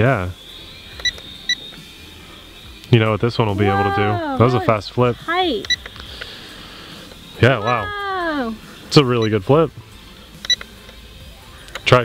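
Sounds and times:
short electronic beeps: 0:00.0 - 0:04.8, 0:05.6 - 0:06.0, 0:07.2 - 0:08.0, 0:10.4 - 0:10.7
high whine of drone motors: 0:00.0 - 0:12.0.

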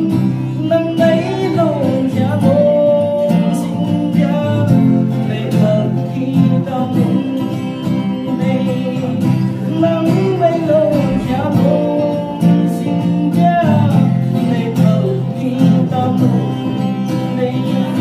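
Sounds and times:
man singing: 0:00.0 - 0:18.0
strummed acoustic guitar: 0:00.0 - 0:18.0.

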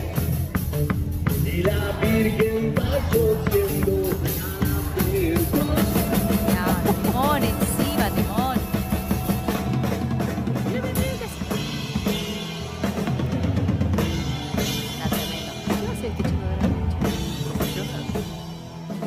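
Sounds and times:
drum kit beat with cymbal crashes: 0:00.0 - 0:19.0
rock band playing live: 0:00.0 - 0:19.0.

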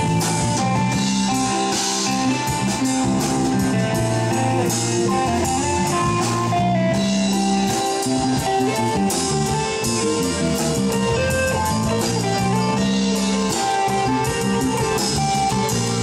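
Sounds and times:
drum kit with cymbal strokes: 0:00.0 - 0:16.0
electric guitar: 0:00.0 - 0:16.0
keyboard: 0:00.0 - 0:16.0.

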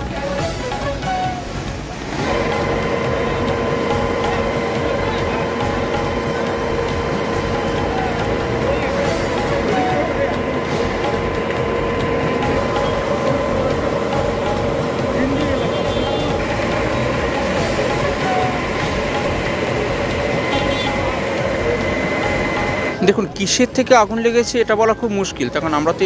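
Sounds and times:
engine running with whine: 0:00.0 - 0:23.0
crowd voices: 0:00.0 - 0:26.0.

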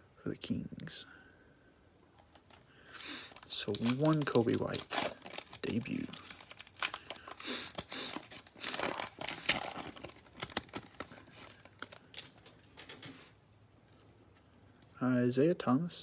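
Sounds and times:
wrapper tearing and crinkling: 0:02.4 - 0:13.1.

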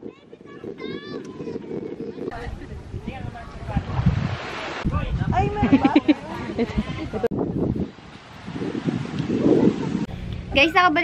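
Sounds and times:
people talking: 0:00.0 - 0:04.2, 0:04.9 - 0:07.3, 0:09.4 - 0:11.0
wind: 0:00.0 - 0:11.0.

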